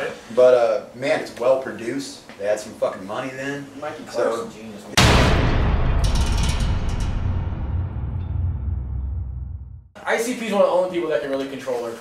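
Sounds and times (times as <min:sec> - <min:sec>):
boom with low rumble: 0:05.0 - 0:09.9.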